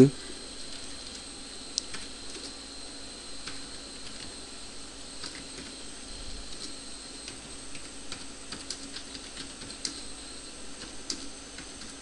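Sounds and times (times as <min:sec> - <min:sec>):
faint electrical hum: 0:00.0 - 0:12.0
keyboard keys clicking: 0:06.6 - 0:10.0, 0:10.8 - 0:12.0.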